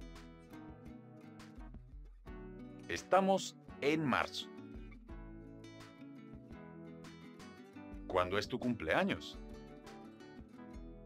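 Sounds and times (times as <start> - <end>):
soft background music: 0.0 - 11.0
plucked guitar notes: 7.9 - 9.8.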